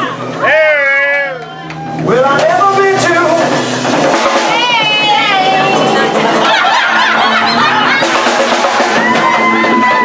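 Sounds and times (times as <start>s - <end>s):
live band music with drums: 0.0s - 10.0s.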